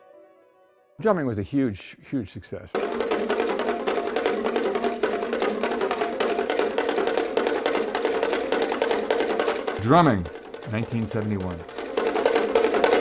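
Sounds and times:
bongo drums struck with sticks: 0:02.7 - 0:13.0
person speaking: 0:09.8 - 0:11.7.

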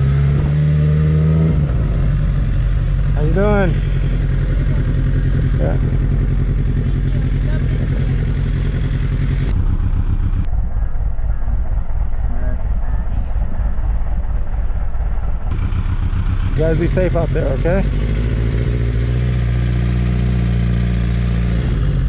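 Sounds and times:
motorcycle engine idling: 0:00.0 - 0:22.0.

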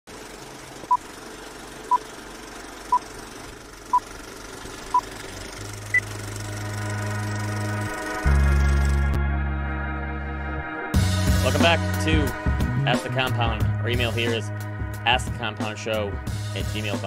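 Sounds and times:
low hum: 0:00.2 - 0:10.5.

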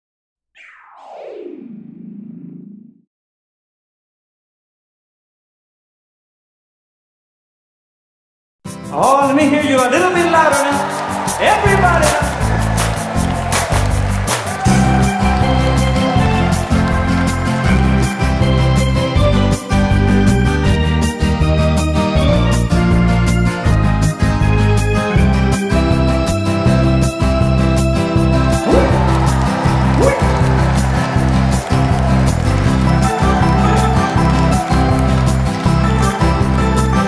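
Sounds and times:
electronic whoosh gliding down: 0:00.6 - 0:02.9
organ playing a lively pop tune: 0:28.4 - 0:37.0.

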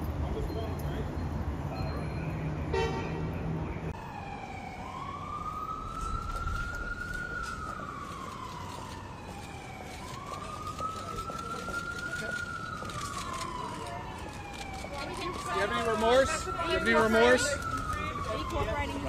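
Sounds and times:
wailing siren: 0:03.8 - 0:19.0.

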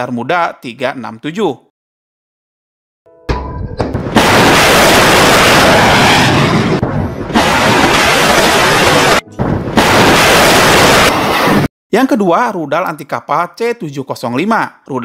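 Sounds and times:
rocket booster rushing roar: 0:04.0 - 0:11.7.

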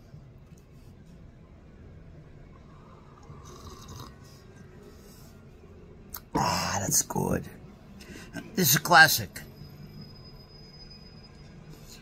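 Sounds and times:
slurping coffee sips: 0:03.2 - 0:04.4.

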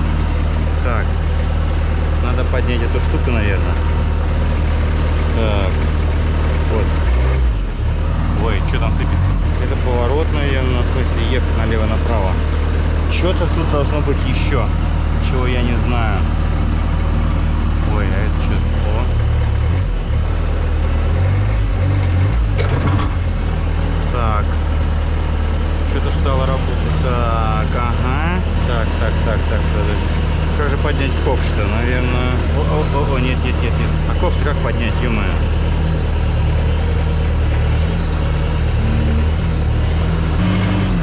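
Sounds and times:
loader engine droning: 0:00.0 - 0:41.0.

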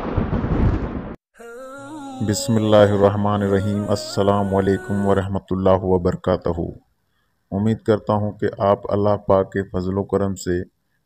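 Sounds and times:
thunder rumbling: 0:00.0 - 0:01.2.

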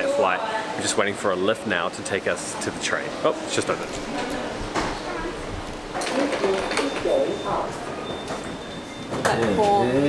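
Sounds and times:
indistinct talking: 0:00.0 - 0:10.0.

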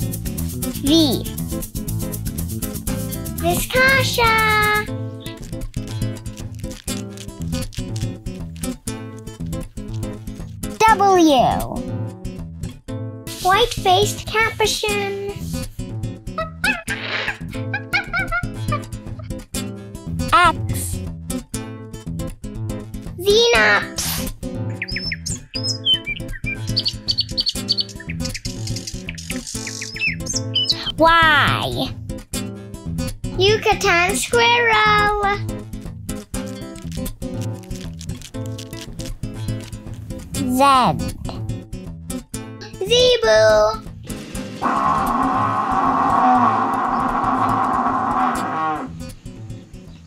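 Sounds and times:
acoustic guitar music: 0:00.0 - 0:50.0
high whistled bird calls: 0:24.7 - 0:30.9
bird chirping: 0:24.7 - 0:31.0
cow mooing: 0:44.6 - 0:48.9.

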